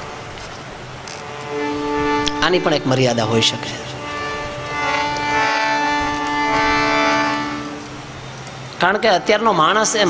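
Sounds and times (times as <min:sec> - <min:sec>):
held musical chord: 0:01.0 - 0:08.8.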